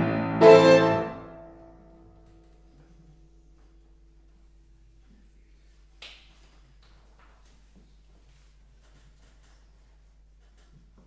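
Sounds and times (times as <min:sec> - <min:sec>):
piano chord: 0:00.0 - 0:02.2.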